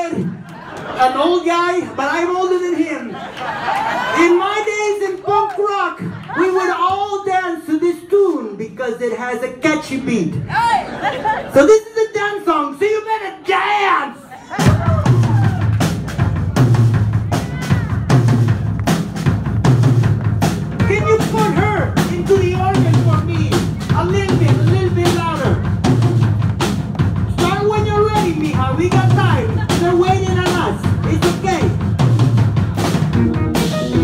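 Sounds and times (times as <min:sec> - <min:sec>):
drum kit driving beat: 0:14.5 - 0:34.0
keyboard lines: 0:33.1 - 0:34.0.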